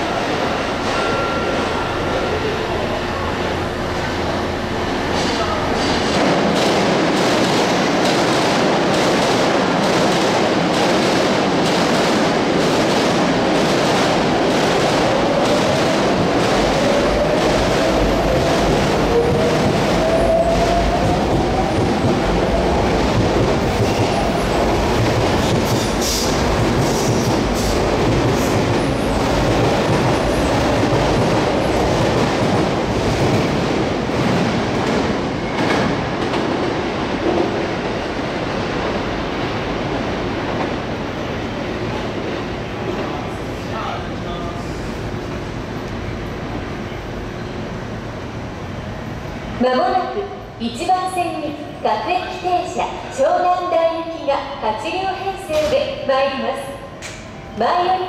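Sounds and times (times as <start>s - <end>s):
electric train rolling: 0.0s - 40.7s.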